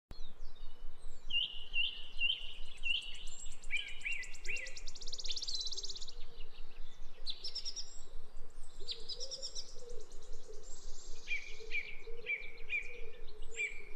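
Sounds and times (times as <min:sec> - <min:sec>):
small birds chirping: 0:00.1 - 0:13.9.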